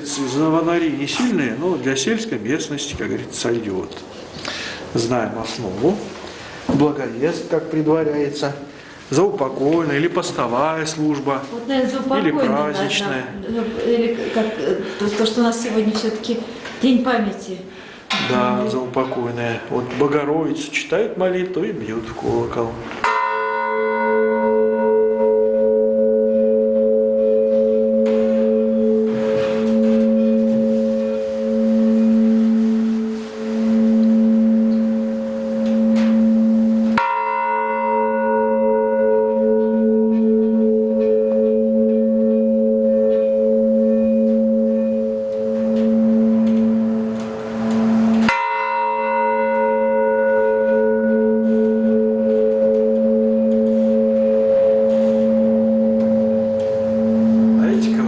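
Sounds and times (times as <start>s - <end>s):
large church bell tolling: 23.0s - 58.0s.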